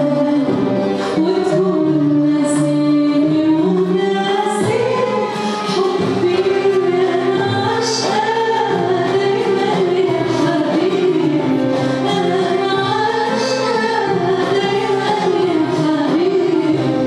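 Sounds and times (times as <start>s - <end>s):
accompanying ensemble: 0.0s - 17.0s
woman singing into a microphone: 0.0s - 17.0s.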